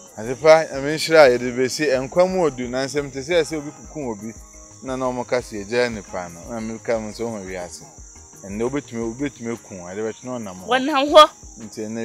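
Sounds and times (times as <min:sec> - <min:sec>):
crickets chirring: 0:00.0 - 0:12.0
man talking: 0:00.2 - 0:10.7, 0:11.6 - 0:12.0.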